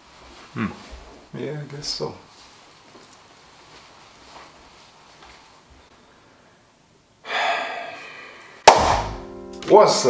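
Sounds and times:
loud hand clap: 0:08.7 - 0:09.2
music: 0:08.8 - 0:10.0.

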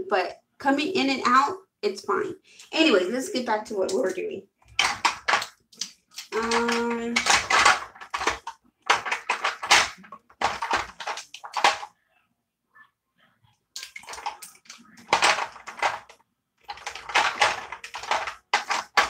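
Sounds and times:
plastic tubes clattering and rustling: 0:03.8 - 0:11.9, 0:13.8 - 0:19.0.

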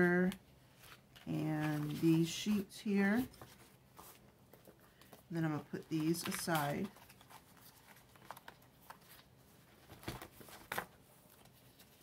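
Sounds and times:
paper rustles: 0:00.8 - 0:02.5, 0:05.8 - 0:12.0.

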